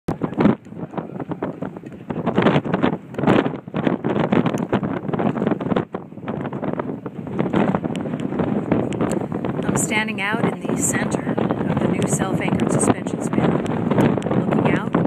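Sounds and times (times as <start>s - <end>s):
gusty wind buffeting microphone: 0.1s - 15.0s.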